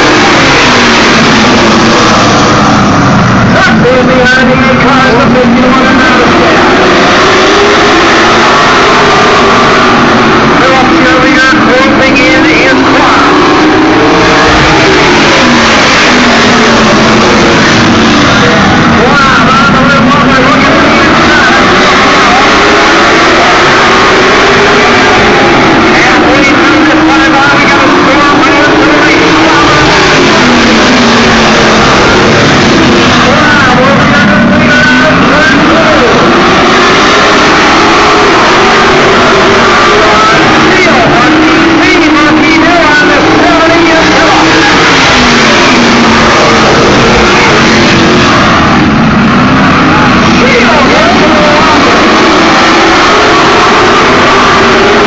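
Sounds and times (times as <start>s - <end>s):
stock car engines racing: 0.0s - 55.0s.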